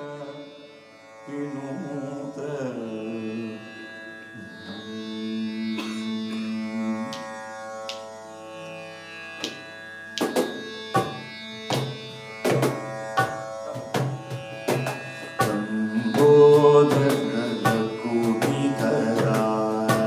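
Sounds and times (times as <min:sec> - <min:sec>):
sustained many-toned drone: 0:00.0 - 0:20.0
hand percussion strikes: 0:05.8 - 0:08.1, 0:09.4 - 0:20.0.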